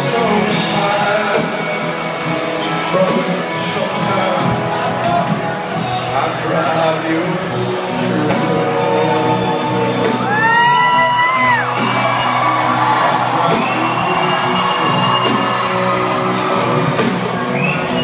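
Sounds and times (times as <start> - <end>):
live country band ballad: 0.0 - 18.0
steady drum beat: 0.0 - 18.0
audience whooping: 8.7 - 18.0
high held shout: 9.6 - 16.9.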